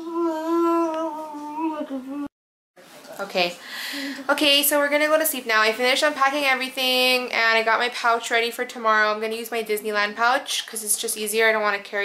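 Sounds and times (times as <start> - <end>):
person humming a held note: 0.0 - 2.3.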